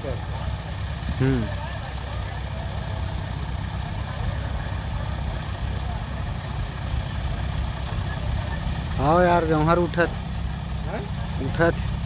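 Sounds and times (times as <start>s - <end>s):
faint voices: 0.0s - 12.0s
heavy diesel engine rumbling: 0.0s - 12.0s.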